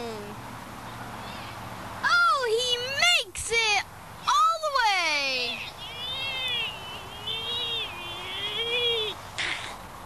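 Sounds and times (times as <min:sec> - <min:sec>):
boy humming a wavering note: 0:06.3 - 0:09.2.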